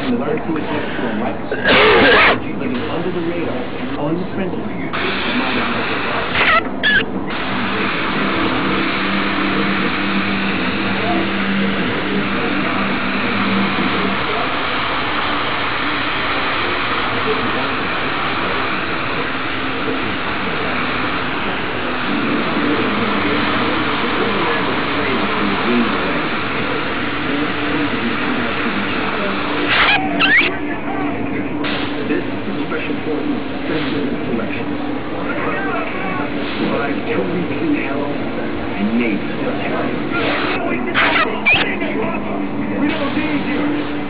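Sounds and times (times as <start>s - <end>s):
steady low hum: 0.0s - 44.0s
air hissing: 4.9s - 30.5s
airbrush compressor running: 5.0s - 30.5s.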